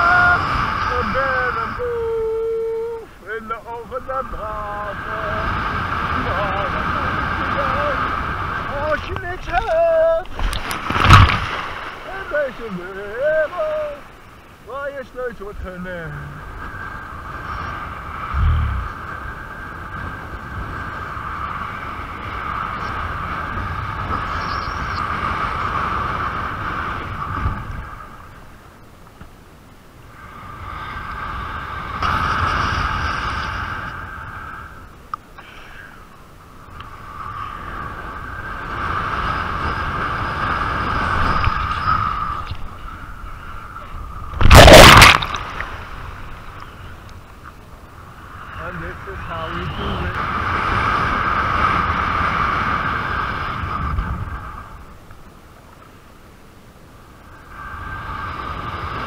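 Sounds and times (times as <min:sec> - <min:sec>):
wind and water rushing: 0:00.0 - 0:59.0
water crashing against camera: 0:09.0 - 0:12.7, 0:44.3 - 0:46.6.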